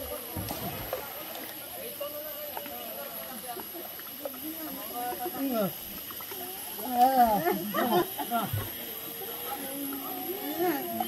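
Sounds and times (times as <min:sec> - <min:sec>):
background hiss: 0:00.0 - 0:11.0
people and children in pool: 0:00.0 - 0:11.0.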